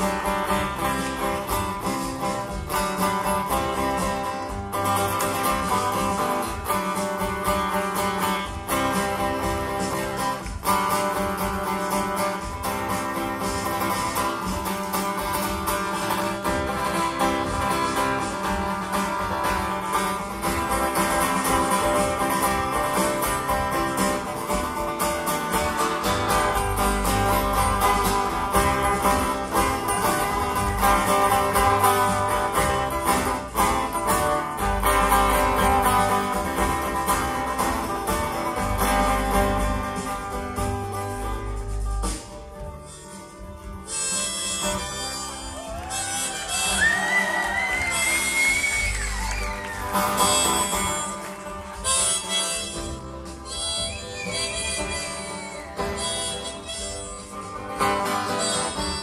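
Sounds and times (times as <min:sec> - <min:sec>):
acoustic guitars picked and strummed: 0:00.0 - 0:59.0.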